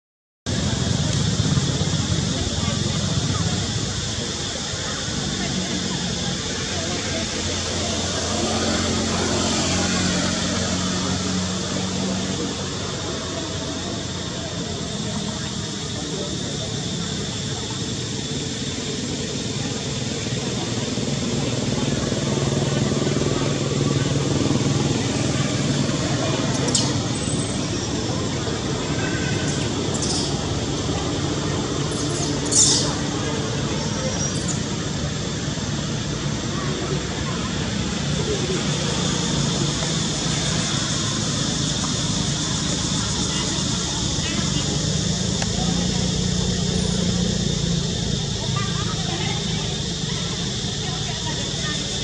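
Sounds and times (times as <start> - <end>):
outdoor rumble and hiss: 0.5 - 52.0
vehicle engine humming: 0.5 - 52.0.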